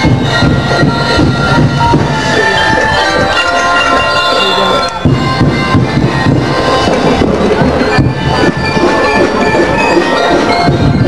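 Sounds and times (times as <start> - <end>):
drum beats: 0.0 - 11.0
loud parade music: 0.0 - 11.0.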